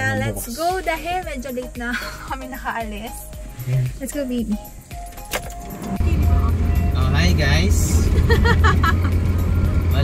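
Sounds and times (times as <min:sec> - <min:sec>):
car cabin drone: 0:04.6 - 0:10.0.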